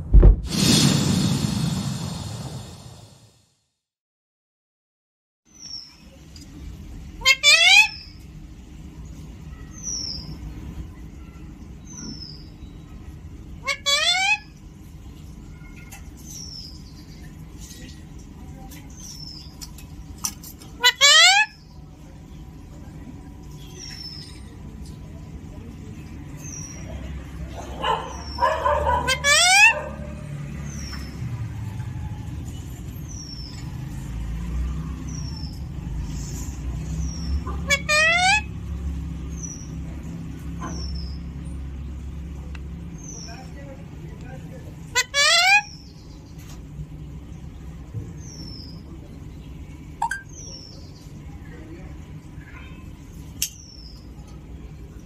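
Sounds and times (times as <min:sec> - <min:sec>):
low rumble: 0:00.0 - 0:03.4
parakeet screeching: 0:07.2 - 0:08.1, 0:13.6 - 0:14.5, 0:20.8 - 0:21.6, 0:28.1 - 0:30.0, 0:37.4 - 0:38.5, 0:44.9 - 0:45.8
parakeet talk-like mimicry: 0:07.2 - 0:08.2, 0:09.4 - 0:10.4, 0:11.1 - 0:14.6, 0:20.7 - 0:21.8, 0:26.4 - 0:31.2, 0:37.0 - 0:38.6, 0:44.8 - 0:46.1
faint high chirp: 0:50.0 - 0:50.8.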